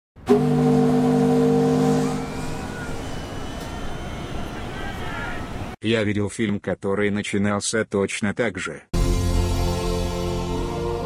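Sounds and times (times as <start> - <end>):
ship horn blowing: 0.2 - 5.8
crowd noise: 2.0 - 5.8.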